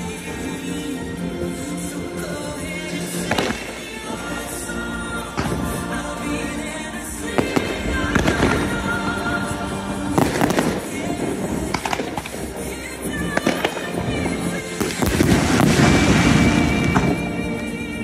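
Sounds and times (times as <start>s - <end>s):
show music: 0.0s - 18.0s
fireworks bangs and crackles: 2.5s - 4.4s, 5.4s - 6.1s, 7.2s - 17.9s.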